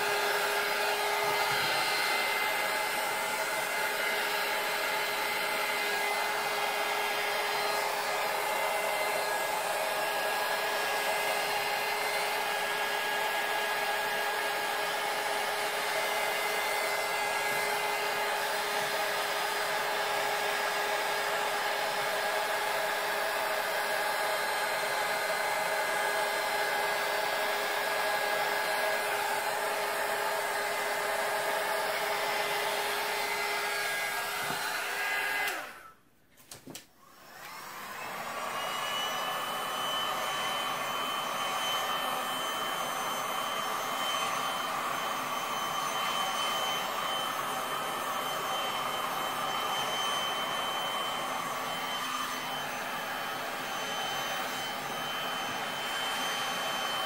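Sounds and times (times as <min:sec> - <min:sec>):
heat gun blowing with whine: 0:00.0 - 0:36.0, 0:37.0 - 0:57.0.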